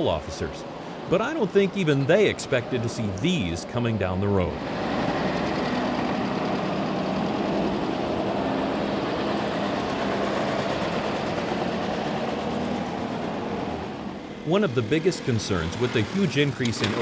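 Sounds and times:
truck engines running: 0.0s - 17.0s.

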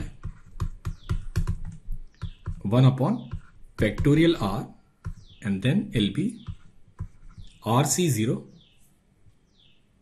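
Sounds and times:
stylus tapping on tablet: 0.0s - 7.6s.

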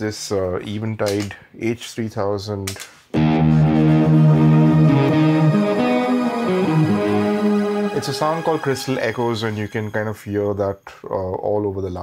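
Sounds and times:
electric guitar with shimmering echoes: 3.2s - 10.0s.

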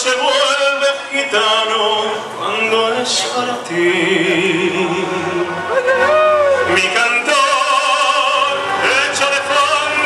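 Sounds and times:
man singing operatically: 0.0s - 5.6s, 6.5s - 10.0s.

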